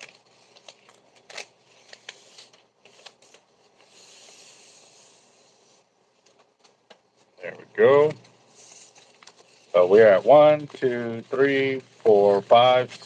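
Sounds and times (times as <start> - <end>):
paper tickets rustling and crinkling: 0.0 - 4.1, 6.2 - 13.0.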